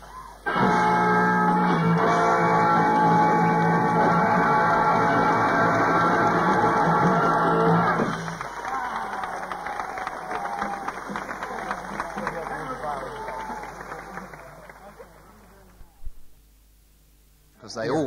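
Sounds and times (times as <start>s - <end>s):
rock band holding a chord: 0.5s - 15.4s
audience cheering and clapping: 2.0s - 16.0s.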